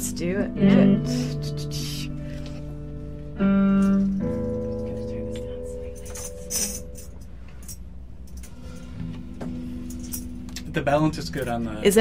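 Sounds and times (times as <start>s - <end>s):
held instrument chord: 0.0s - 7.2s, 8.6s - 12.0s.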